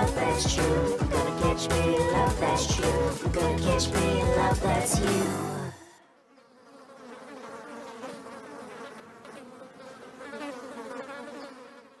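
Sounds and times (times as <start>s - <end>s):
flies buzzing: 0.0s - 12.0s.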